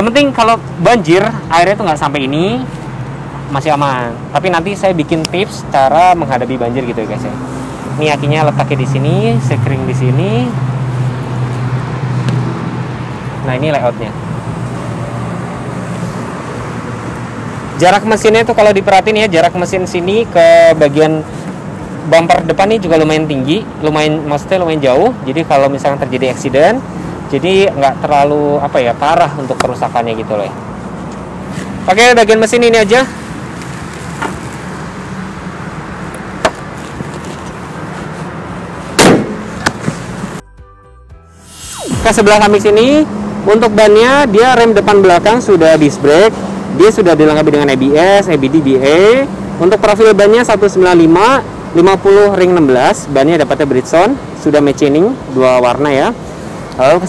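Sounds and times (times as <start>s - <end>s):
vehicle engine droning: 0.0s - 40.4s, 41.6s - 54.0s
car bonnet slamming shut: 39.0s - 40.0s.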